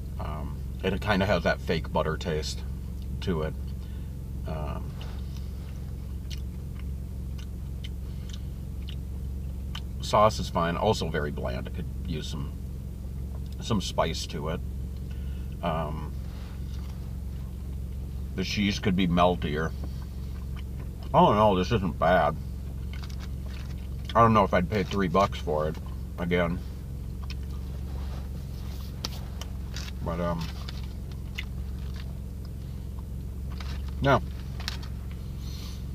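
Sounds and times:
low hum: 0.0 - 35.9
man chewing soft food: 4.9 - 9.9, 19.8 - 21.1, 22.6 - 24.2, 26.7 - 35.9
rustles: 15.0 - 18.4, 24.8 - 35.9.

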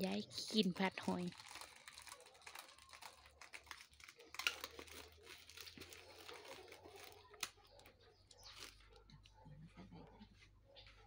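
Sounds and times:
plastic bag crinkling: 0.0 - 9.0.

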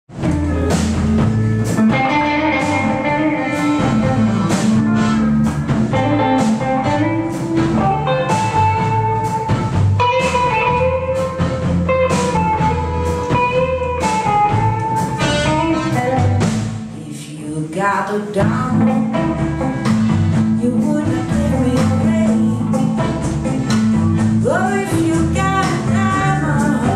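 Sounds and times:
bass guitar: 0.1 - 17.0, 18.4 - 26.9
electric guitar lines: 0.1 - 17.0, 18.4 - 26.9
drum kit: 0.1 - 17.2, 18.2 - 26.9.

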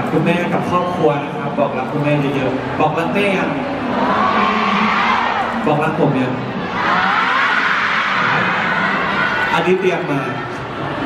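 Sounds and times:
crowd screaming and cheering: 3.6 - 11.0.

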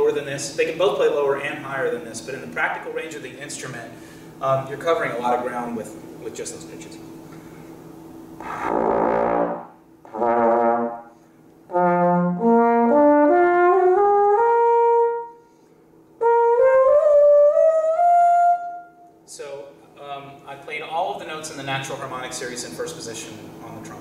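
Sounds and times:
trombone playing rising notes: 8.4 - 15.3, 16.2 - 18.9.

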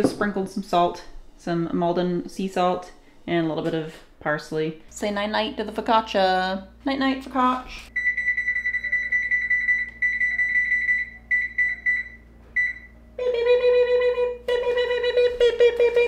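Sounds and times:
oven control panel beeping: 8.0 - 13.0.

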